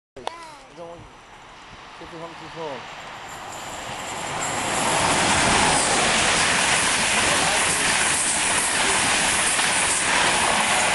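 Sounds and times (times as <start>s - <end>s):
high-speed train passing: 0.8s - 10.9s.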